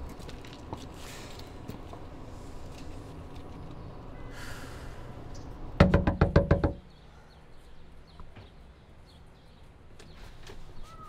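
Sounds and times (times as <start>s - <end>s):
knuckles knocking on glass door: 5.8s - 6.8s.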